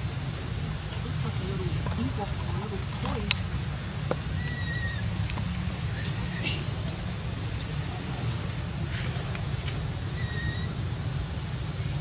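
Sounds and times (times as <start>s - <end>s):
steady low rumble: 0.0s - 12.0s
macaque call: 4.4s - 5.1s, 6.0s - 6.8s, 10.1s - 10.8s.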